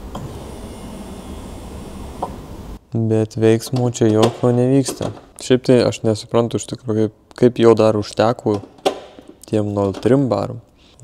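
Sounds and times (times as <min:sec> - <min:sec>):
electric fuel pump humming: 0:00.0 - 0:02.8.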